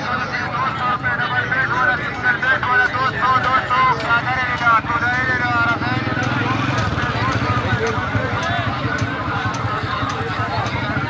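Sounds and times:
people talking: 0.0 - 11.0
motorcycle engine running: 0.2 - 11.0.

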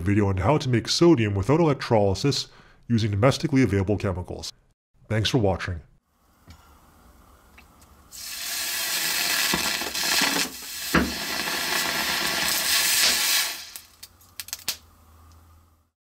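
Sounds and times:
sharp pops: 7.6 - 14.8
sodium hissing in water: 8.1 - 14.0
small crackles: 9.1 - 15.4.

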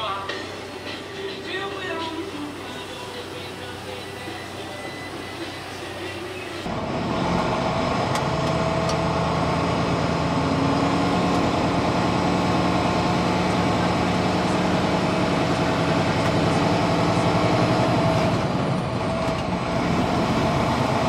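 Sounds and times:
diesel truck engine running: 0.0 - 21.0.

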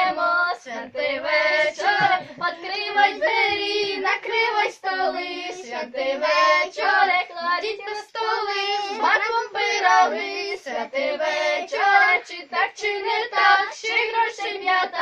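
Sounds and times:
children singing a carol: 0.0 - 15.0.

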